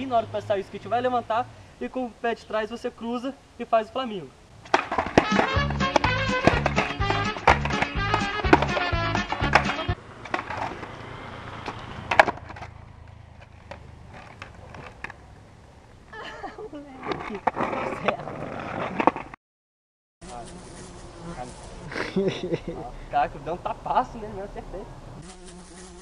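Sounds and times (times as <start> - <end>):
skateboard knocking on concrete: 4.6 - 11.0, 11.6 - 15.2
music with steady beat: 5.2 - 10.0.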